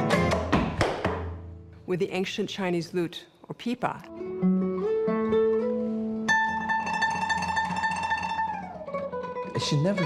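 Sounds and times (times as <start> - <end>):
sharp percussive knocks: 0.1 - 1.4.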